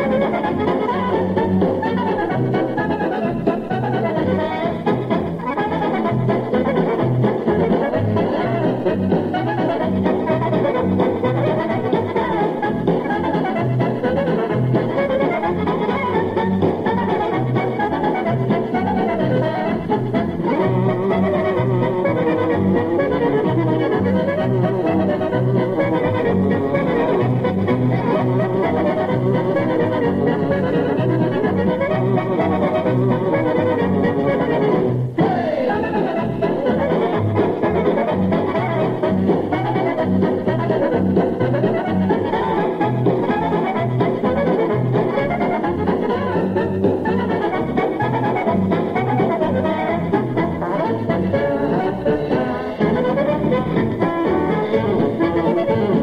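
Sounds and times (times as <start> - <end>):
polka band with accordion and brass: 0.0 - 56.0.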